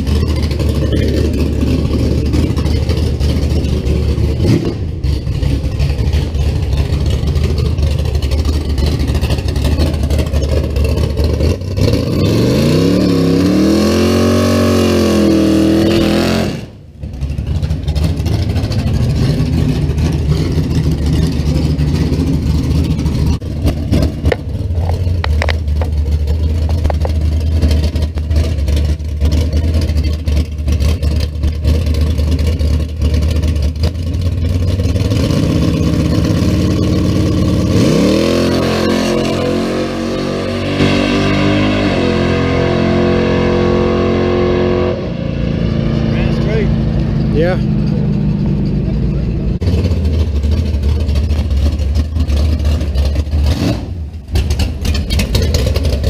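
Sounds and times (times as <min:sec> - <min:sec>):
drag car engine revving: 0:00.0 - 0:56.0.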